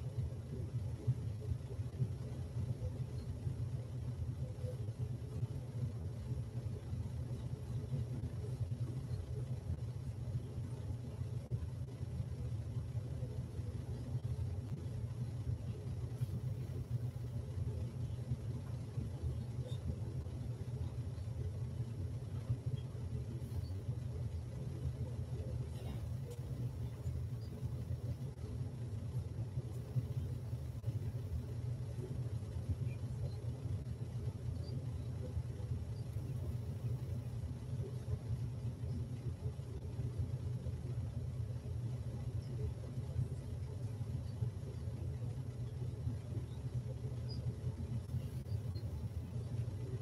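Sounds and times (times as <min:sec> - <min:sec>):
low room rumble: 0:00.0 - 0:50.0.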